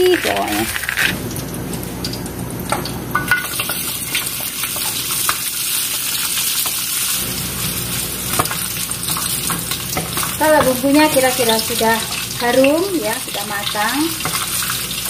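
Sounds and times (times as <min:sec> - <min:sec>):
food sizzling in a wok: 0:00.0 - 0:15.0
spatula scraping and tapping pan: 0:08.3 - 0:12.7, 0:14.2 - 0:14.7.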